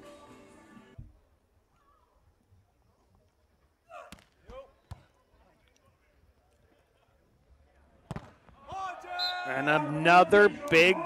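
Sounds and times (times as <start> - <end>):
players shouting: 8.6 - 11.0.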